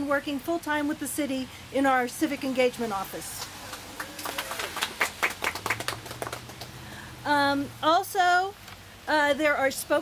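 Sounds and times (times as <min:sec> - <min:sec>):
people clapping: 0:03.3 - 0:06.8.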